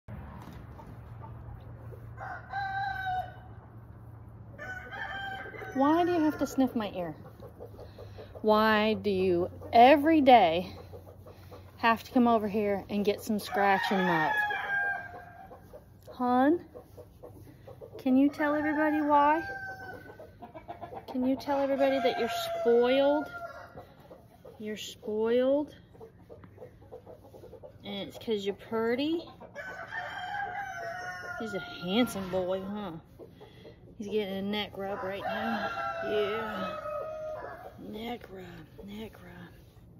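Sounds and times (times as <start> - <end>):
chickens clucking: 0.4 - 2.4, 4.6 - 39.9
rooster crowing: 2.2 - 3.5, 4.6 - 6.5, 29.6 - 32.0.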